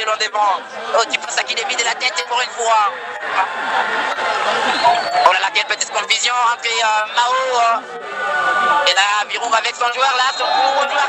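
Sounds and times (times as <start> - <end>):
stadium crowd hubbub: 0.0 - 11.0.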